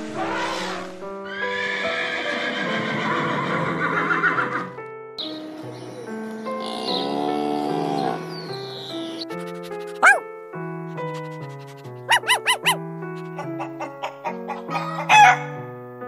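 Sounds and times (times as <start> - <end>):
background music: 0.0 - 16.0
horse whinnying: 0.2 - 4.7.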